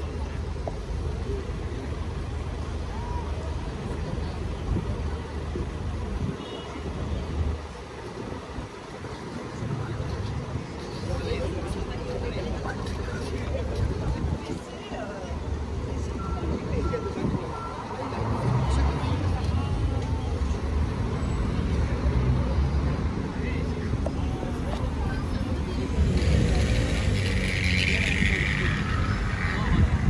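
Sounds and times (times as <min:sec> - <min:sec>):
passers-by talking: 0:00.0 - 0:30.0
road traffic: 0:00.0 - 0:30.0.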